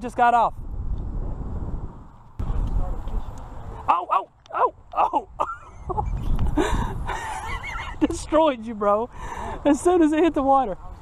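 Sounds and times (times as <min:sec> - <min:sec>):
man laughing: 0:05.0 - 0:08.1.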